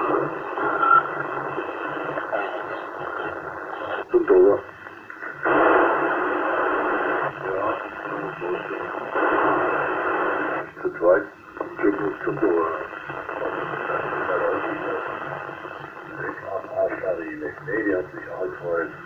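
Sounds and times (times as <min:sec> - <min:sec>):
faint broken radio voices: 0:00.0 - 0:19.0
radio static hiss: 0:00.0 - 0:19.0.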